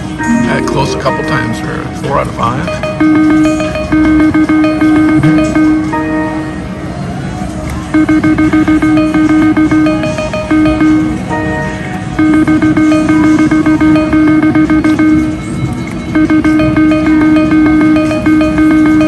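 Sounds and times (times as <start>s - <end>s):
video keno machine electronic tones: 0.2s - 6.4s, 7.9s - 19.0s.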